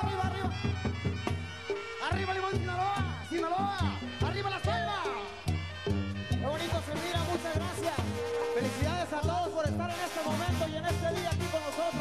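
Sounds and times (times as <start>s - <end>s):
brass band playing: 0.0s - 12.0s
tuba bass notes: 0.0s - 12.0s
wind instrument runs and trills: 5.5s - 10.6s.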